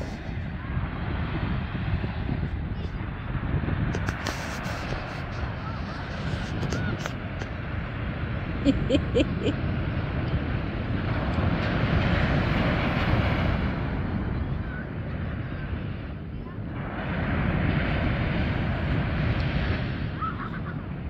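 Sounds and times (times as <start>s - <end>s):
ocean surf breaking on beach: 0.0s - 21.0s
person laughing: 8.6s - 9.6s, 20.2s - 20.8s.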